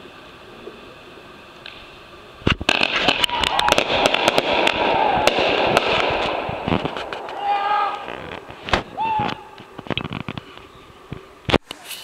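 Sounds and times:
fireworks bangs and crackles: 2.4 - 11.6.

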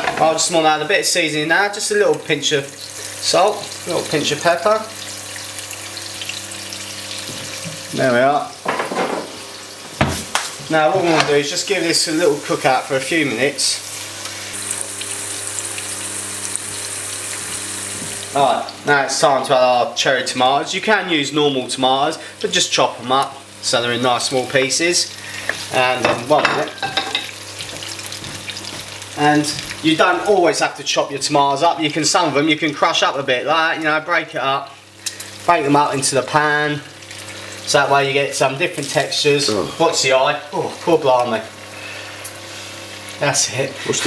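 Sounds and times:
onions sizzling in oil: 0.0 - 20.4, 21.0 - 44.0.

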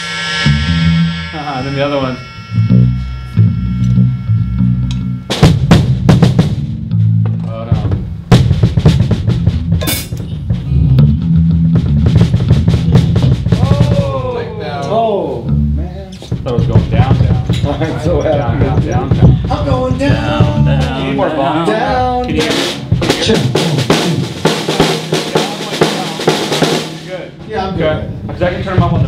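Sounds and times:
band sustained low notes: 0.0 - 26.0
drum kit playing: 0.0 - 29.0.

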